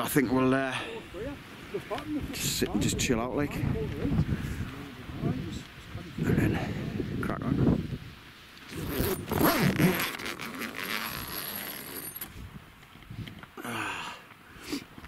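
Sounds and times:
voices talking: 0.0 - 7.6
wind gusting across microphone: 0.0 - 13.5.

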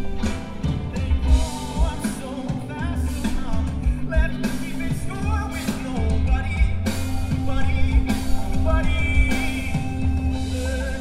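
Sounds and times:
bass guitar: 0.0 - 11.0
drums: 0.0 - 11.0
electric guitars: 0.0 - 11.0
lead vocal singing: 0.0 - 11.0.

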